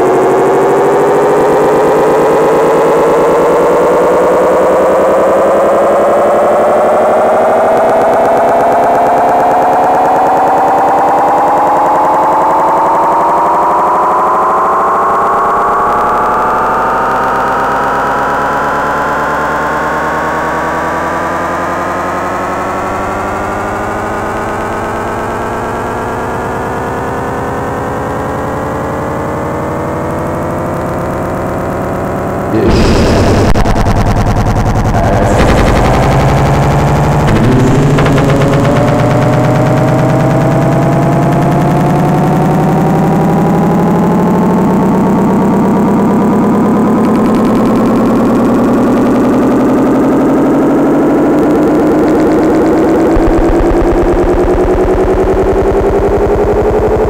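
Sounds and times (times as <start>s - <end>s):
synthesizer drone gliding upward: 32.5s - 43.9s
low steady hum: 32.6s - 40.2s.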